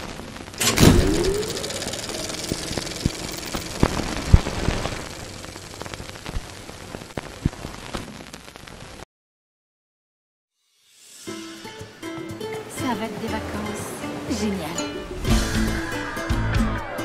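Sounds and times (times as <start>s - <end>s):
crackling hiss with clicks and pops: 0.0s - 9.1s
opening hit: 0.6s - 5.0s
short rising tone: 0.6s - 6.6s.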